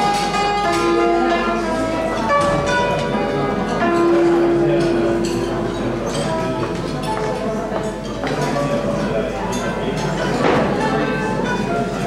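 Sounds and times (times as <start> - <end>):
ringing string notes: 0.0 - 7.7.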